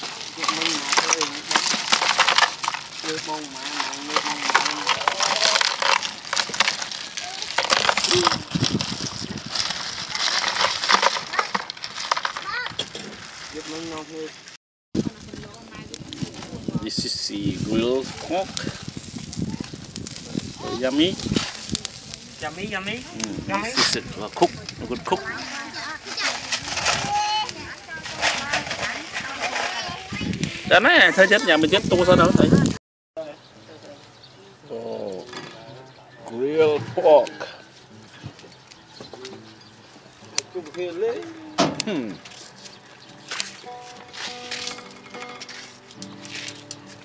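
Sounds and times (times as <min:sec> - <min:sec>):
ice clinking against cans: 0:00.0 - 0:08.7, 0:10.0 - 0:13.0
man talking: 0:16.8 - 0:18.6, 0:20.6 - 0:21.2, 0:22.4 - 0:25.4, 0:30.6 - 0:34.0.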